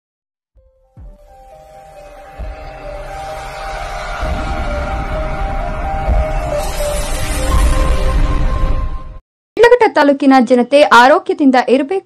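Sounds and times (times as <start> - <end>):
intro music with held tones: 0.7 - 9.2
heavy bass layer: 1.1 - 9.2.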